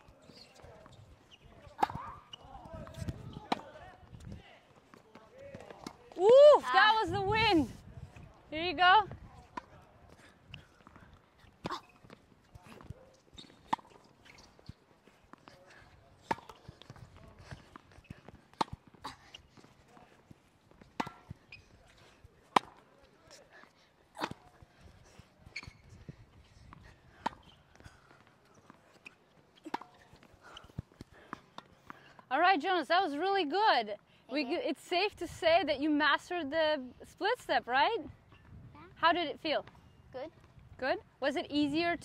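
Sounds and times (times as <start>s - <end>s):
tennis ball bouncing: 1.6s - 2.2s, 13.4s - 14.8s, 16.2s - 17.1s, 17.7s - 19.7s, 20.7s - 21.6s, 22.5s - 22.8s, 26.7s - 32.0s
racket striking tennis ball: 1.8s - 2.2s, 21.0s - 21.4s, 29.6s - 30.0s.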